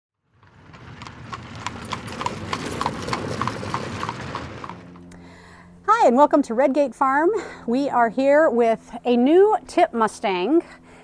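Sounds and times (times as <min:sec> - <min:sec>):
horse hooves clip-clopping: 0:00.3 - 0:05.2.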